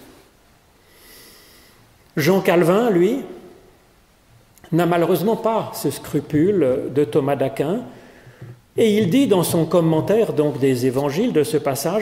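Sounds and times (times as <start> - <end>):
man breathing into microphone: 7.9 - 8.6.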